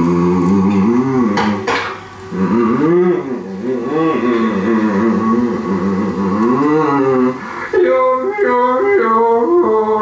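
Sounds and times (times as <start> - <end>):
man yodel-singing: 2.3 - 10.0.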